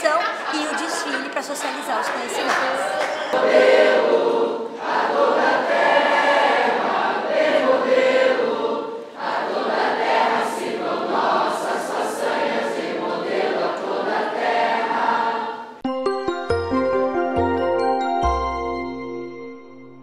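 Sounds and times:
girls singing together: 2.1 - 15.8.

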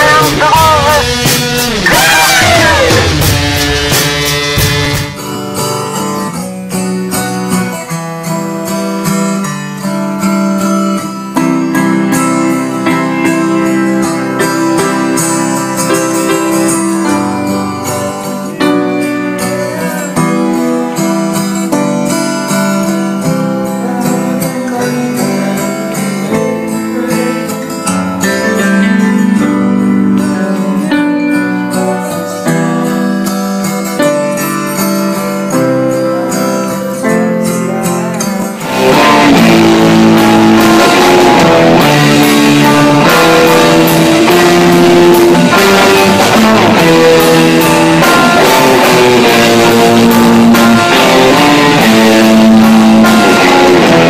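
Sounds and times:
guitar-led band music: 0.0 - 54.0.

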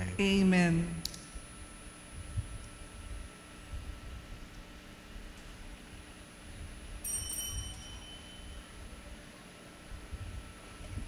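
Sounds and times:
small bell ringing: 7.0 - 8.8.

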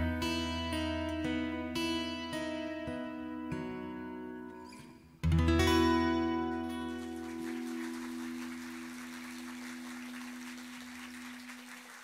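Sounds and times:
acoustic guitar chord ringing: 0.0 - 8.8
audience applauding: 6.3 - 12.0.

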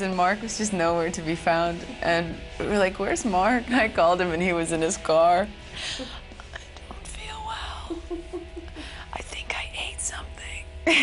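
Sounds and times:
woman whispering: 6.9 - 8.0, 9.0 - 10.7
woman laughing under her breath: 7.8 - 9.1.

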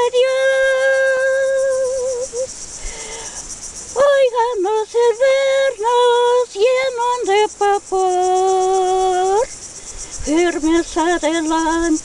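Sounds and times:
elderly woman singing: 0.0 - 2.5, 4.0 - 9.5, 10.2 - 12.0
high-pitched insect chorus: 0.0 - 12.0.

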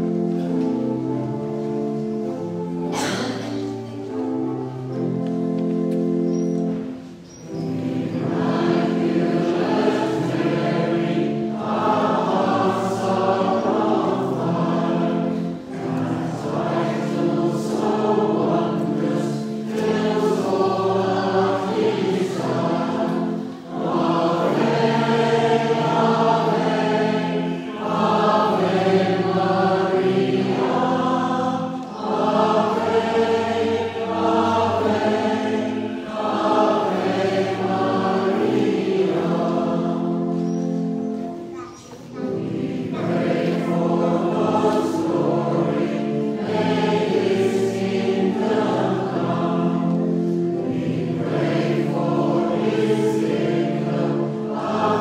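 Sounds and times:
congregation and choir singing a hymn: 0.0 - 55.0
organ accompaniment: 0.0 - 55.0.

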